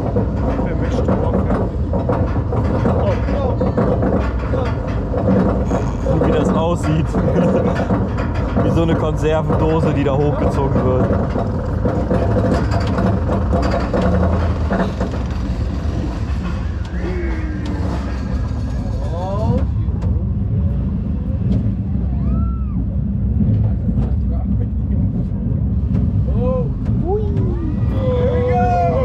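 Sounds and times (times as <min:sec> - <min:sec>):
roller coaster chain lift rumble: 0:00.0 - 0:29.0.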